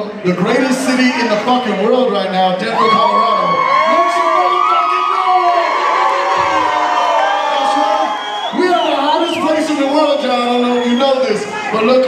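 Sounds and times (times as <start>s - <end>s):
concert crowd cheering: 0.0s - 12.0s.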